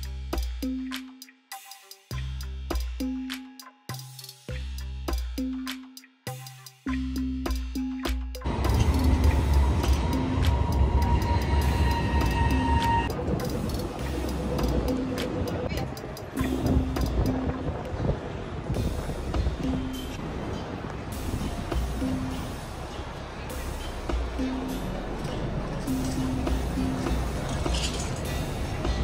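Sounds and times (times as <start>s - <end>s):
background music with a beat: 0.0s - 18.1s, 18.7s - 20.2s, 21.1s - 29.0s
city street noise: 0.0s - 29.0s
tram whining: 8.4s - 29.0s.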